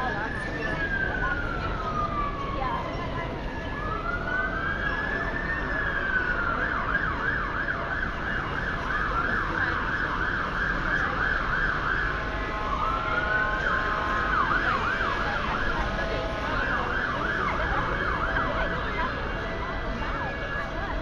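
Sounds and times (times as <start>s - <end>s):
emergency vehicle siren: 0.0s - 21.0s
street traffic: 0.0s - 21.0s.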